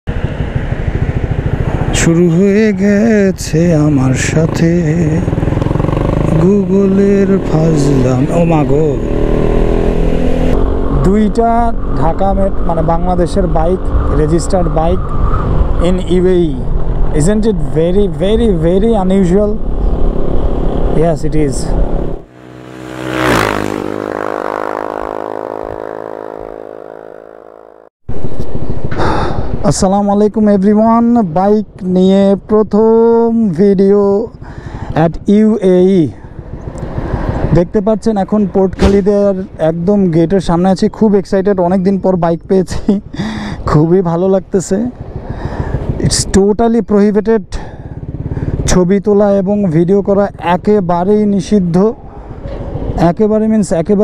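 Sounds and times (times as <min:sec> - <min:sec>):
motorcycle engine running: 0:00.1 - 0:14.1, 0:21.6 - 0:31.0, 0:34.0 - 0:40.8, 0:43.0 - 0:51.4
rising buzzing tone: 0:05.5 - 0:11.9, 0:21.7 - 0:29.0.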